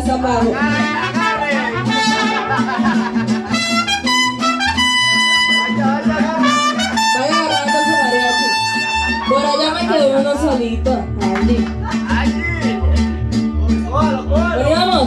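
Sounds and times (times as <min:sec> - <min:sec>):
mariachi band playing: 0:00.0 - 0:15.0
trumpets: 0:00.6 - 0:02.5, 0:03.6 - 0:09.6.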